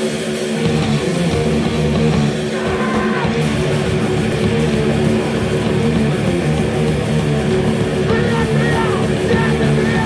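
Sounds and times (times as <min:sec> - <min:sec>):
distorted electric guitars: 0:00.0 - 0:10.0
drums: 0:00.0 - 0:10.0
high swooping guitar notes: 0:00.0 - 0:10.0.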